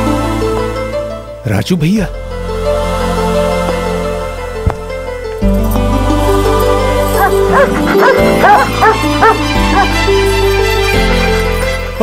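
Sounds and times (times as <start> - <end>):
film background music: 0.0 - 12.0
dog yipping: 7.2 - 9.9.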